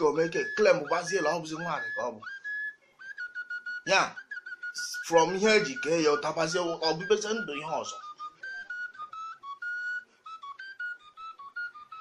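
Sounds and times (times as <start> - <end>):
person speaking: 0.0 - 2.2, 4.8 - 8.0
high whistle-like tone: 0.0 - 12.0.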